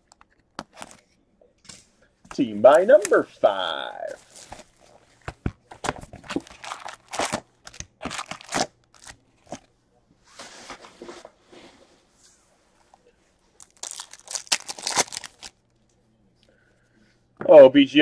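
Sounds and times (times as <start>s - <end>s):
foil packs crinkling: 4.1s - 9.7s, 13.6s - 15.6s
foil pack tearing open: 6.3s - 9.2s, 13.6s - 15.6s.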